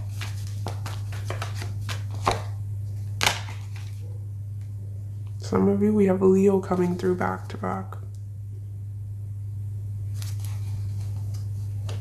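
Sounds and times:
cards shuffling: 0.0s - 2.6s, 3.2s - 4.0s, 10.1s - 12.0s
steady low hum: 0.0s - 12.0s
card slaps: 0.1s - 2.6s, 3.2s - 3.9s.

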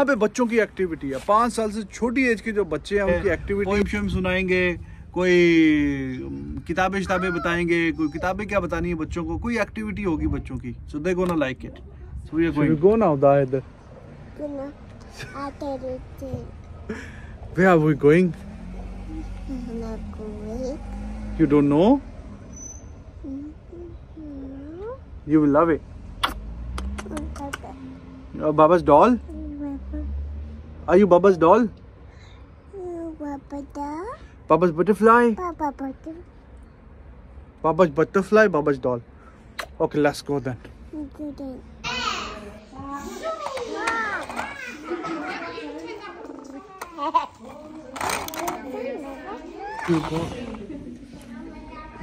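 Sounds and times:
children and adults talking: 0.0s - 52.0s
toddler humming: 7.0s - 8.3s, 23.2s - 25.0s.

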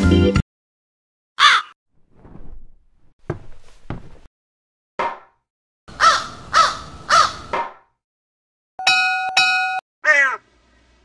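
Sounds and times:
crow cawing: 1.4s - 1.8s, 5.9s - 7.5s.

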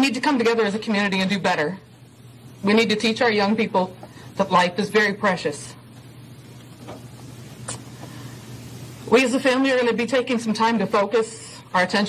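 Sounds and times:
low steady hum and hiss: 0.0s - 12.0s.

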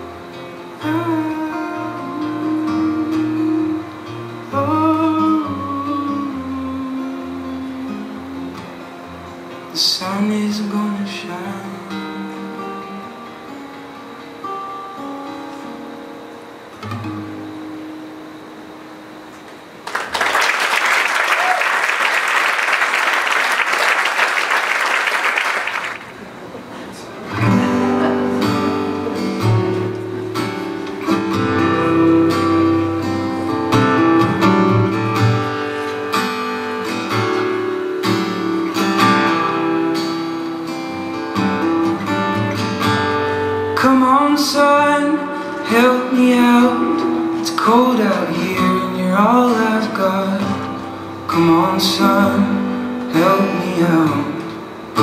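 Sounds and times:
acoustic guitar playing: 0.0s - 20.7s, 22.0s - 55.0s
audience applause: 19.8s - 26.7s.

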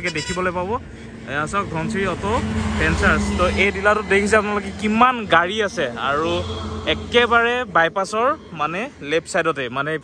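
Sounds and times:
speech: 0.0s - 10.0s.

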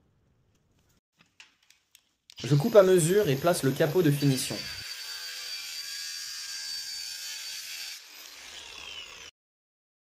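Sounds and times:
angle grinder cutting: 2.3s - 9.4s.

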